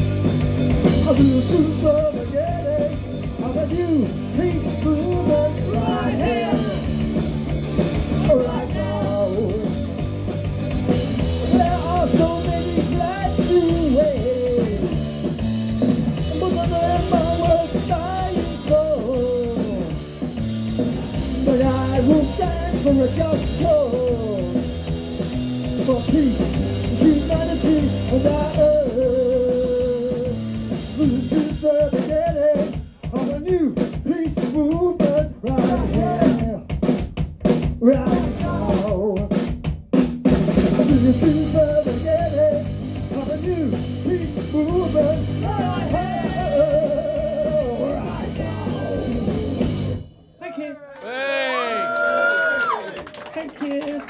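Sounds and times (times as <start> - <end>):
bass guitar: 0.0 - 50.4
drum kit: 0.0 - 50.4
person singing: 1.0 - 7.0, 8.1 - 9.9, 16.3 - 20.0, 20.9 - 24.6, 31.0 - 36.6, 37.8 - 39.3, 43.3 - 49.6.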